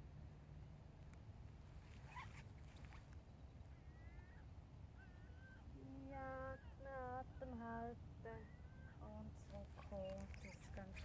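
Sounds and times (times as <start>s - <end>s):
faint low outdoor rumble: 0.0s - 11.0s.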